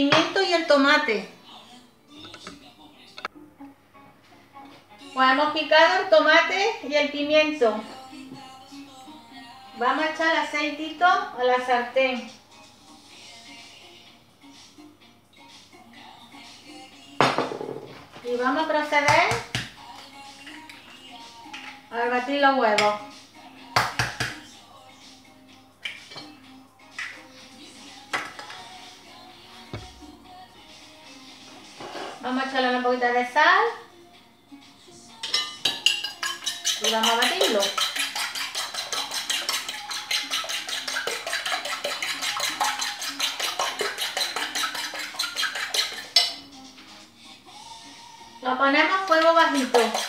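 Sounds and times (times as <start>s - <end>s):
egg knocking on hard rim: 23.8s - 24.4s, 35.7s - 46.1s
fork clicking against plate: 35.2s - 46.4s.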